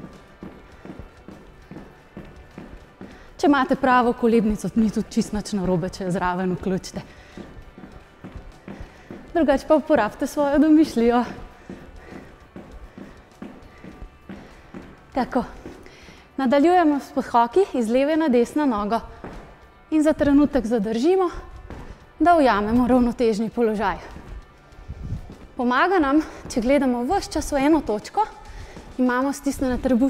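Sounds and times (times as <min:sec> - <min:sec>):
sneakers thudding on wooden floor: 0:00.0 - 0:03.6, 0:04.5 - 0:16.2, 0:18.8 - 0:20.6, 0:21.3 - 0:23.2, 0:23.8 - 0:29.0
faint background music: 0:00.0 - 0:30.0.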